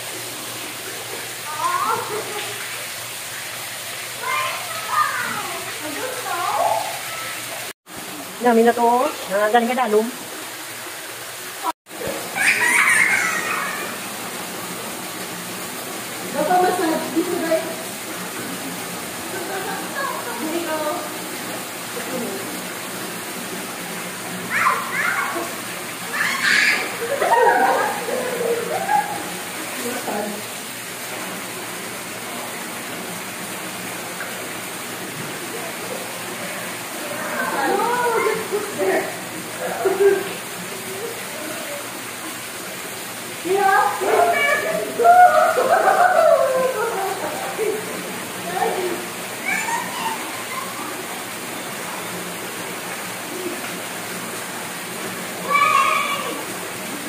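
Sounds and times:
water pouring into pool: 0:00.0 - 0:57.0
children's voices: 0:04.2 - 0:07.6, 0:24.5 - 0:29.2, 0:37.0 - 0:39.0, 0:43.5 - 0:47.8, 0:48.5 - 0:51.0, 0:55.4 - 0:56.5.

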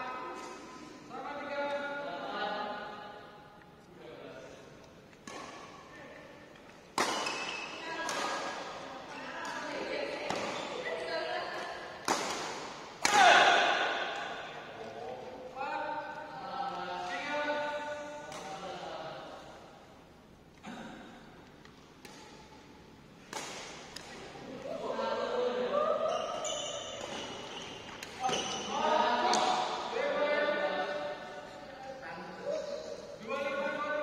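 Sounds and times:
racket hitting shuttlecock: 0:05.1 - 0:05.8, 0:06.6 - 0:10.9, 0:11.5 - 0:14.6, 0:23.2 - 0:24.5.

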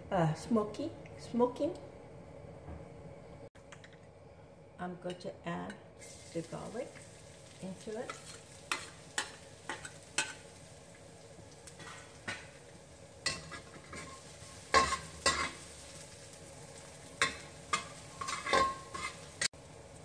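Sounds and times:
garlic sizzling in oil: 0:05.9 - 0:20.0
metal spatula scraping wok: 0:07.8 - 0:10.6, 0:11.7 - 0:12.6, 0:13.2 - 0:16.1, 0:17.0 - 0:19.5.

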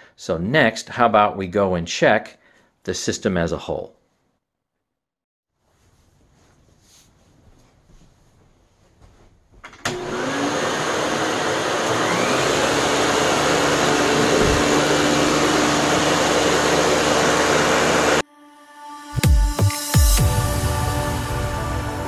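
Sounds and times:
faint shuffling: 0:05.6 - 0:09.6
vacuum cleaner motor running: 0:09.8 - 0:18.2.

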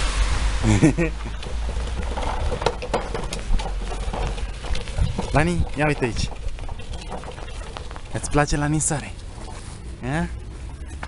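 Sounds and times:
low rumble: 0:00.0 - 0:08.5
footsteps crunching in snow: 0:01.5 - 0:10.2.

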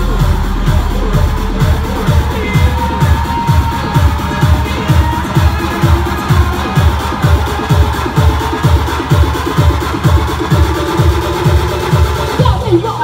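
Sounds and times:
house dance music: 0:00.0 - 0:13.0
kick-drum beat: 0:00.0 - 0:13.0.

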